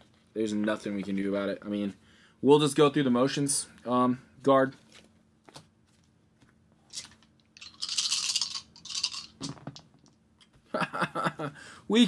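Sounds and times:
dice rattling in hands: 6.9s - 10.0s.

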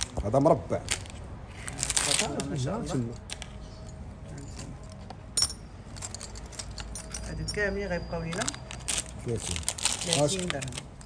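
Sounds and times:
metal rings clinking: 3.3s - 11.0s.

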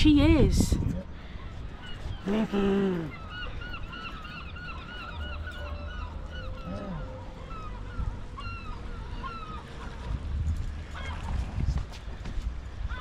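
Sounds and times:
wind rumble on microphone: 0.0s - 2.5s, 7.1s - 13.0s
gulls calling: 0.0s - 13.0s.

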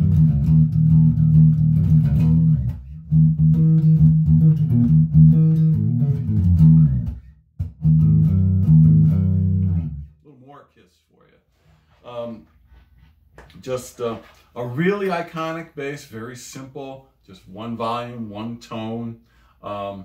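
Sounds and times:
electric bass riff: 0.0s - 10.1s.

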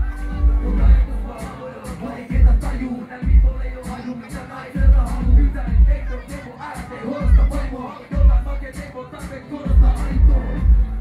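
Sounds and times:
deep bass beat: 0.0s - 4.0s, 4.7s - 6.2s, 7.2s - 8.8s, 9.7s - 11.0s
crowd singing and shouting: 0.0s - 11.0s
hip hop song over loudspeakers: 0.0s - 11.0s
ticking hi-hats: 4.7s - 6.0s.

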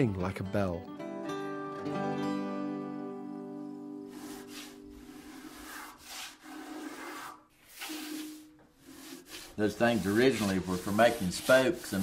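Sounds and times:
spokeshave scraping wood: 4.1s - 12.0s.

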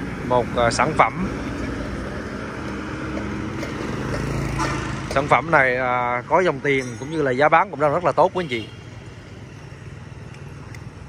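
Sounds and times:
motor scooter passing: 0.0s - 6.8s
street traffic: 0.0s - 11.0s.

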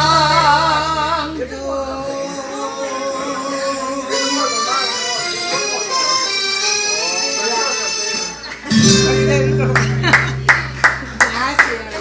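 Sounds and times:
held low note of backing track: 8.7s - 11.6s
hands clapping: 9.7s - 12.0s.

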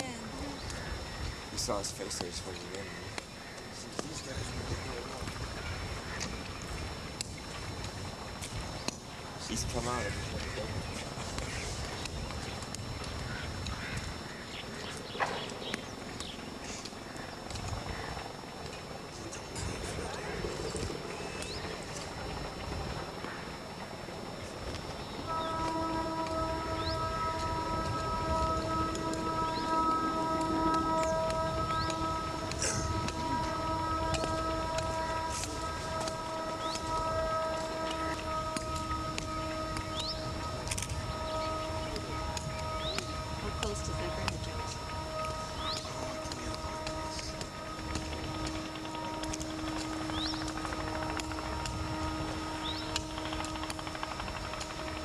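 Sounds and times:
steady held musical tone: 0.0s - 55.0s.

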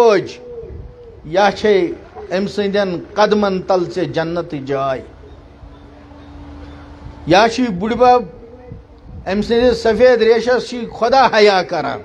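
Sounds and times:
man chanting sermon over pa: 1.2s - 5.1s, 7.3s - 12.0s.

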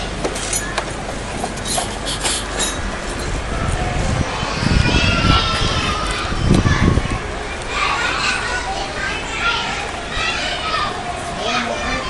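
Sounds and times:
children calling out: 3.3s - 12.0s.

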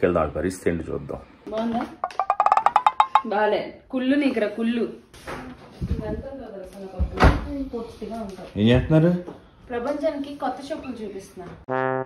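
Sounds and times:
wood block percussion taps: 2.0s - 3.3s.

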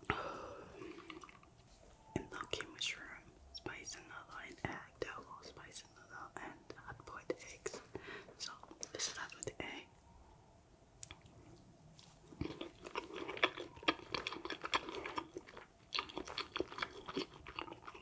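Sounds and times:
woman whispering: 2.2s - 10.0s.

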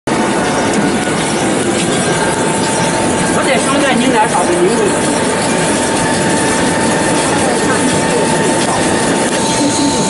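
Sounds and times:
dough machine running with whine: 0.1s - 10.0s.

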